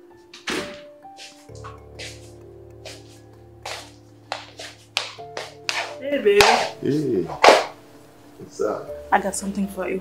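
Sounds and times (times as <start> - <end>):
music of sustained tones: 0.0 - 10.0.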